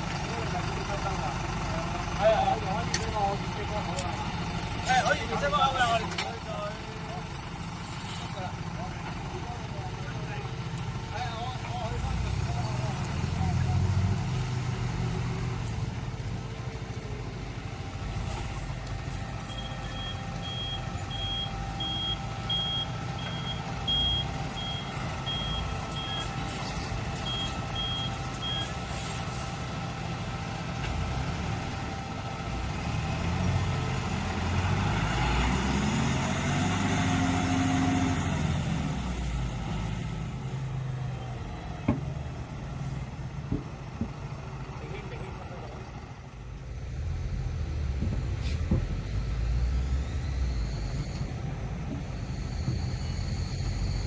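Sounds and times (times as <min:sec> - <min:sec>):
truck engine: 0:00.0 - 0:54.0
reversing beeper: 0:19.3 - 0:29.1, 0:47.9 - 0:54.0.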